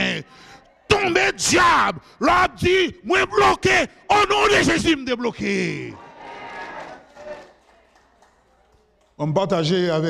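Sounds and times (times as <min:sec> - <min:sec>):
amplified preaching voice: 0:00.0 - 0:06.0, 0:09.2 - 0:10.0.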